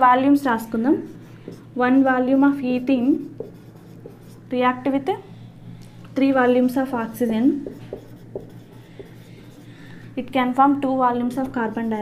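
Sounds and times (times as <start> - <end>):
steady low hum: 0.0 - 12.0
marker writing on whiteboard: 0.9 - 1.8, 3.1 - 4.6, 7.5 - 9.8.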